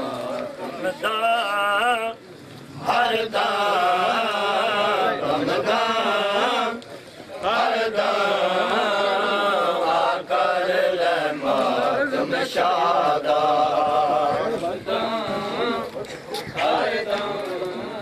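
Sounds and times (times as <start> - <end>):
men chanting a lament: 0.0 - 2.2, 2.8 - 18.0.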